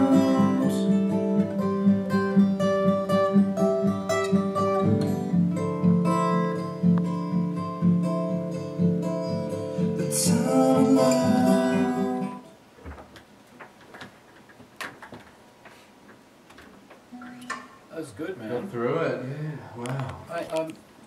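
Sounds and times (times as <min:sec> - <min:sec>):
acoustic guitar plucked and strummed: 0:00.0 - 0:12.6, 0:17.1 - 0:17.9.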